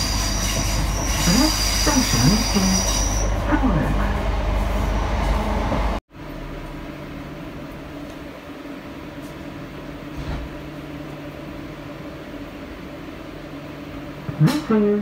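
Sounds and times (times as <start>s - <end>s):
train rumbling on track: 0.0s - 7.0s.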